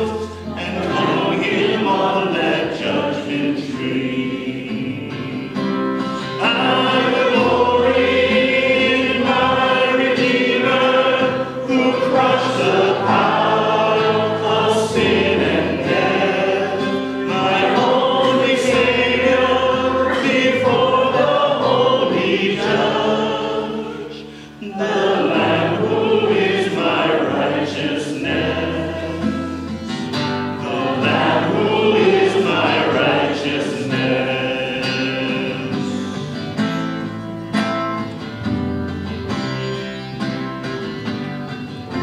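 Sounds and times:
congregation singing a hymn: 0:00.0 - 0:37.2
acoustic guitar: 0:00.0 - 0:42.0.

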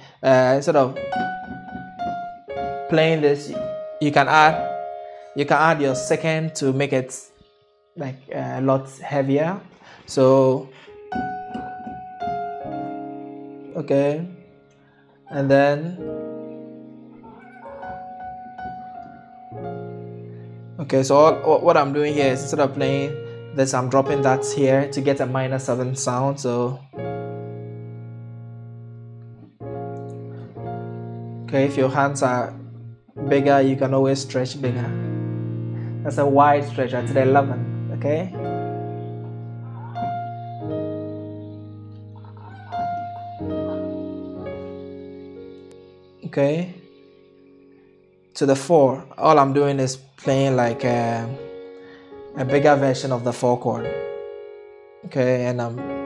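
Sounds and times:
piano chords ringing: 0:00.0 - 0:56.0.

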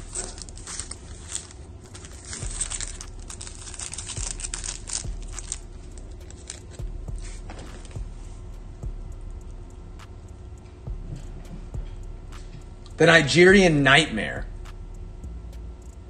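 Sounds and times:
foil wrappers crinkling: 0:00.0 - 0:08.0.

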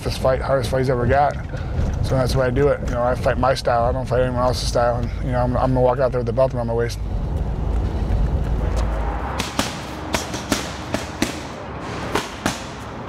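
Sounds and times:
low steady rumble: 0:00.0 - 0:09.4
punches smacking focus mitts: 0:09.4 - 0:13.0.

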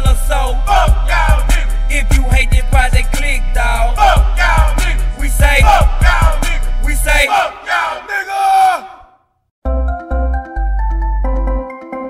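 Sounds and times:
hip hop beat: 0:00.0 - 0:09.0
voices shouting: 0:07.2 - 0:09.1.

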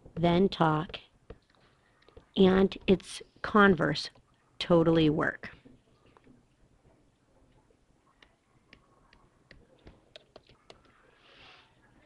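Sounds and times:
stylus tapping on tablet screen: 0:00.6 - 0:03.1.

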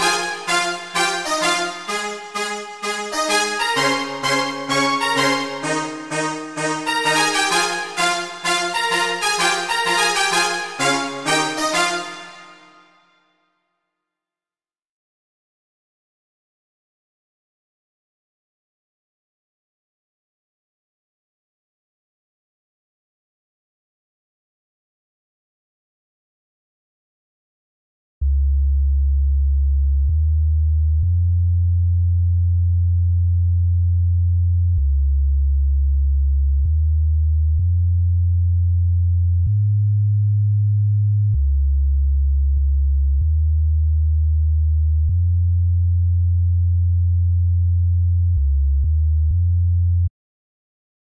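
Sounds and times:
deep synthesizer bass notes: 0:28.2 - 0:50.1.

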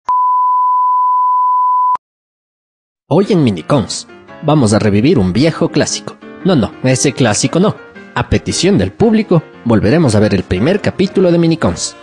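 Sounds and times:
steady test tone beep: 0:00.1 - 0:02.0.

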